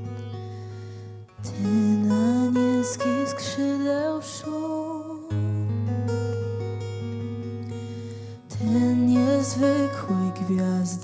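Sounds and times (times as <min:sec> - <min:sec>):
acoustic guitar chords: 0:00.0 - 0:11.0
woman singing: 0:01.4 - 0:05.9, 0:08.4 - 0:11.0.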